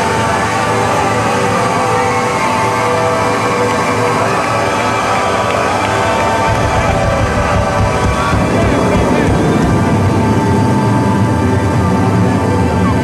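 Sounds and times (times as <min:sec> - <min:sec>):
live electric bass music: 0:05.9 - 0:13.0.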